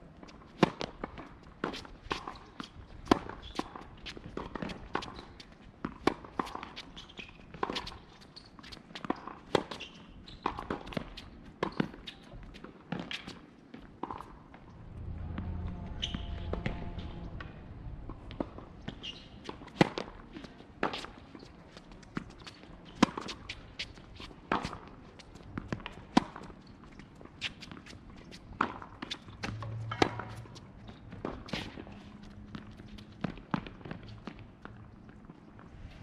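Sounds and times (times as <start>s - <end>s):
low rumble: 14.5s - 18.9s, 29.4s - 31.1s
racket striking tennis ball: 28.6s - 31.9s.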